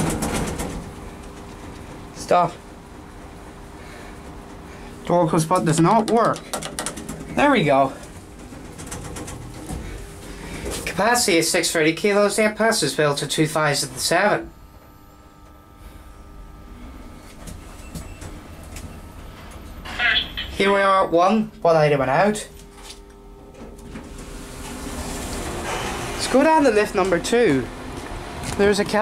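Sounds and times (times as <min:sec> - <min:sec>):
steady low hum: 0:00.0 - 0:29.0
lift doors sliding shut: 0:23.9 - 0:28.5.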